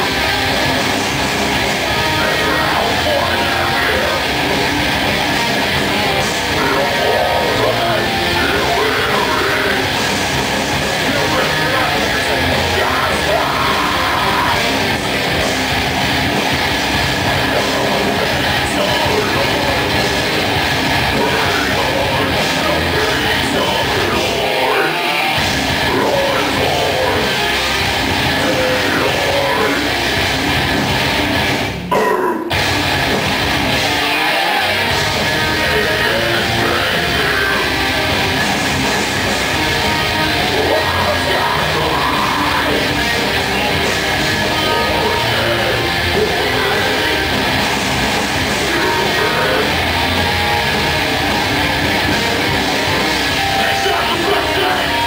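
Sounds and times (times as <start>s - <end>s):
heavy metal band playing: 0.0s - 55.0s
vocalist yelling: 1.8s - 4.6s, 5.9s - 10.0s, 10.7s - 15.4s, 17.2s - 30.0s, 34.3s - 38.1s, 39.6s - 47.7s, 48.4s - 51.3s, 51.9s - 55.0s.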